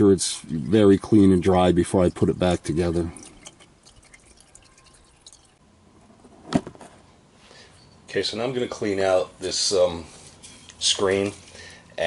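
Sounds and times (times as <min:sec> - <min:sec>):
oil dripping into pan: 0:02.0 - 0:05.6.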